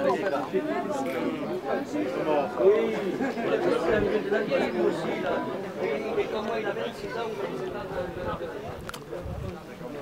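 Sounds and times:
chatter of several people: 0:00.0 - 0:10.0.

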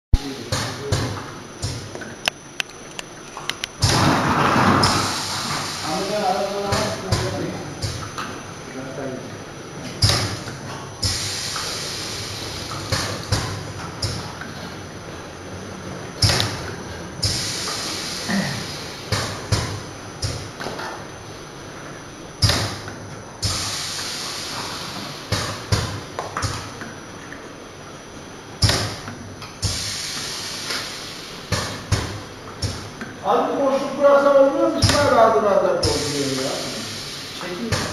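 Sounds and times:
hiss of air: 0:03.8 - 0:07.1, 0:11.0 - 0:14.2, 0:17.2 - 0:19.6, 0:23.4 - 0:25.7, 0:29.6 - 0:32.0, 0:35.8 - 0:37.9.

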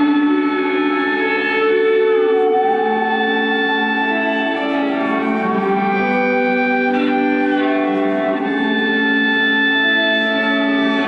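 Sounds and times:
sustained electric guitar notes: 0:00.0 - 0:11.0.

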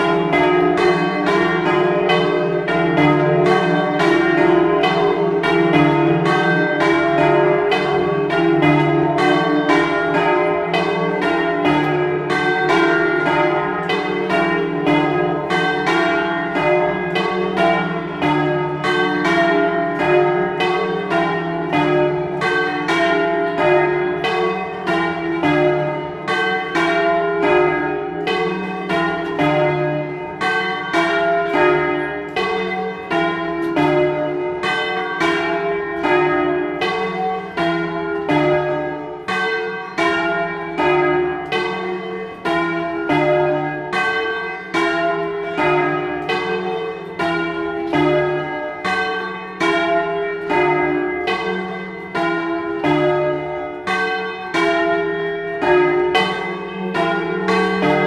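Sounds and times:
church bells pealing: 0:00.0 - 0:58.0.

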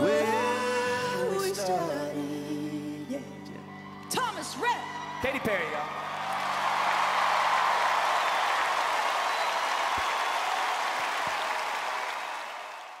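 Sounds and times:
audience applauding: 0:05.6 - 0:13.0.

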